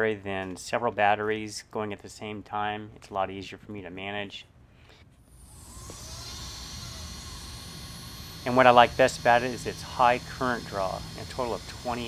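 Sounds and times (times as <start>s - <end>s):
low hum: 5.2s - 12.0s.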